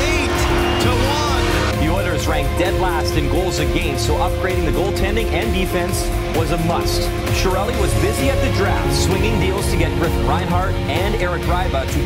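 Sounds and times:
background music held note: 0.0s - 11.0s.

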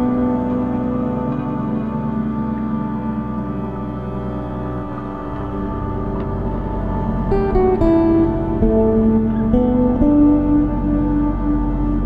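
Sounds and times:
ambient music with held tones: 0.0s - 12.0s
plucked guitar-like notes: 0.0s - 12.0s.

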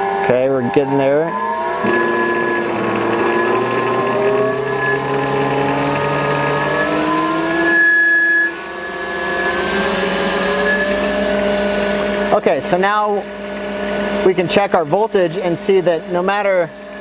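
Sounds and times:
electric motor whine: 0.0s - 17.0s.

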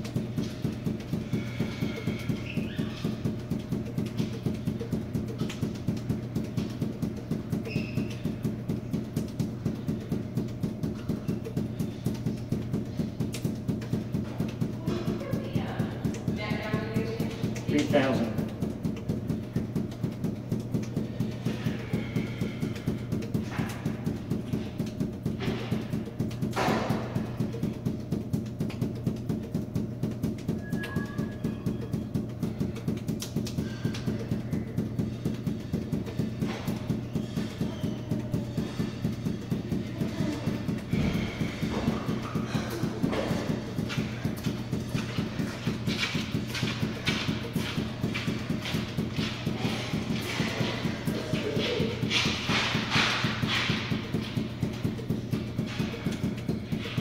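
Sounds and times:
balls bouncing off hard floor: 0.0s - 57.0s
steady low hum: 0.0s - 57.0s.

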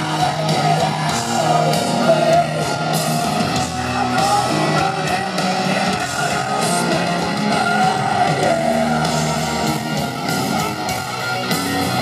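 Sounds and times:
distorted electric guitars: 0.0s - 12.0s
live rock band playing: 0.0s - 12.0s.

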